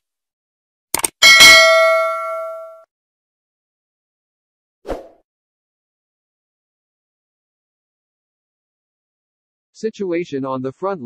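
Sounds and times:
bell ding: 1.2s - 2.9s.

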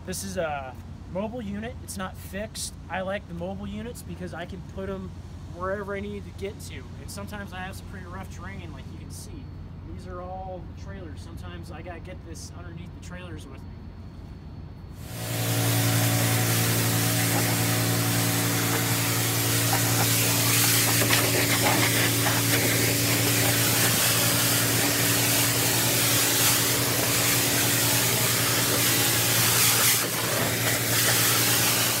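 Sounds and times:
pressure washer engine running: 15.0s - 32.0s
water jet hissing on sheet metal: 15.0s - 32.0s.

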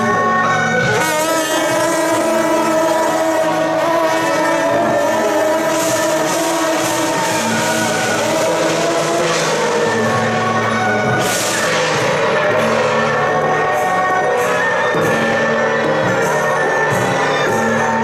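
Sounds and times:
brass horns blowing held notes: 0.0s - 18.0s.

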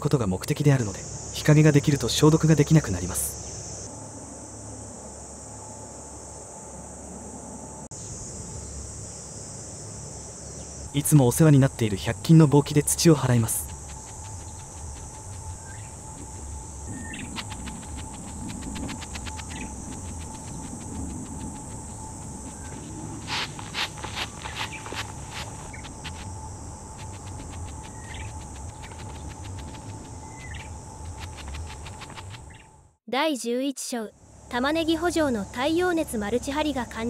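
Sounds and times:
high insect buzz: 0.0s - 33.0s
wind noise on microphone: 13.5s - 32.7s
broom brushing plastic film: 22.7s - 26.2s.

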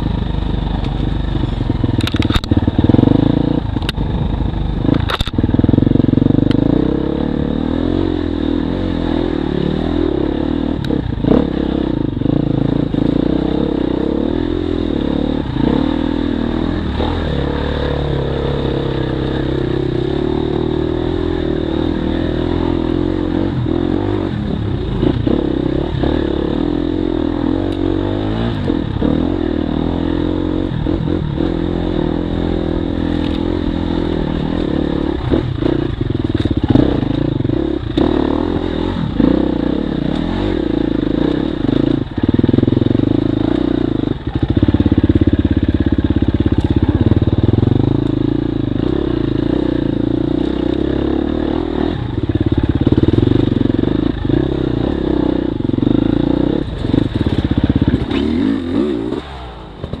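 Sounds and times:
motorcycle engine revving: 0.0s - 60.0s.

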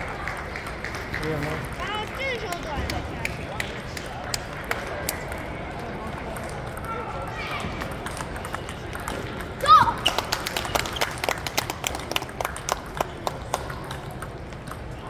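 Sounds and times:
table tennis balls clicking: 5.2s - 15.0s.

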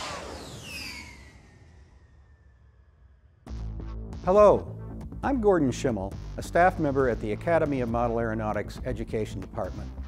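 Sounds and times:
faint tone gliding downward: 0.0s - 3.0s
fly-by whoosh: 0.0s - 3.3s.

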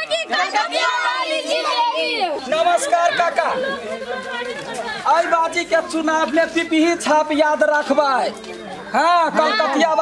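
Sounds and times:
people shouting and chattering: 0.0s - 10.0s.

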